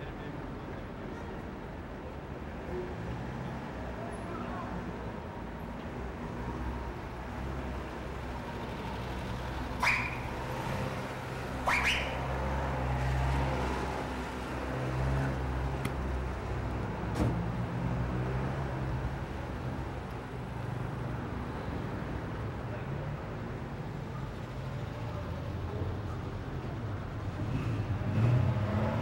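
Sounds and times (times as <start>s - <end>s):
low street rumble: 0.0s - 29.0s.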